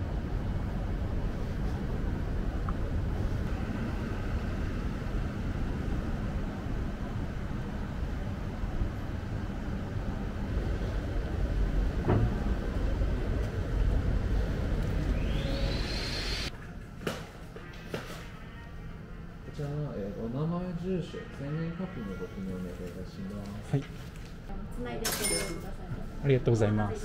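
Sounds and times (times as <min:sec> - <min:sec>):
low rumble of traffic: 0:00.0 - 0:16.5
brief rising whine: 0:14.4 - 0:16.5.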